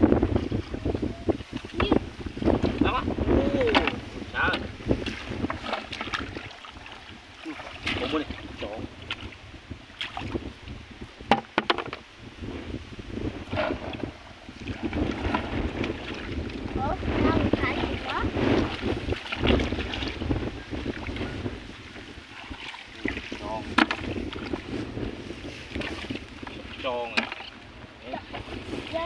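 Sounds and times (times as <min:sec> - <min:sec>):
wind rumbling on microphone: 0:00.0 - 0:29.0
water sloshing and splashing: 0:00.2 - 0:12.1, 0:13.3 - 0:29.0.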